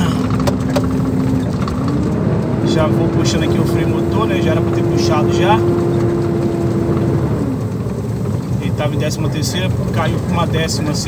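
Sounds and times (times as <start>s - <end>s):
gearbox shifting down: 0.0s - 11.0s
truck diesel engine rumble: 0.0s - 11.0s.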